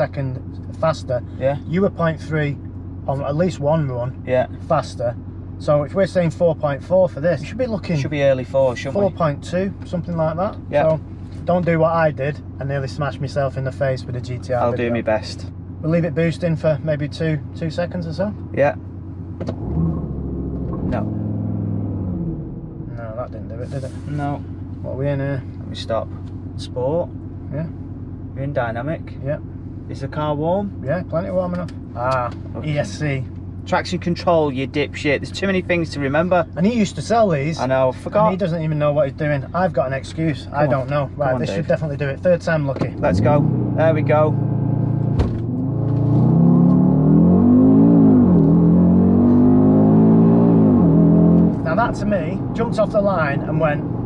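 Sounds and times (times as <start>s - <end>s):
people talking: 0.0s - 18.8s, 22.9s - 27.8s, 28.4s - 44.4s, 51.6s - 53.8s
car engine at full throttle: 0.0s - 54.0s
car engine revving: 13.9s - 24.8s, 40.3s - 54.0s.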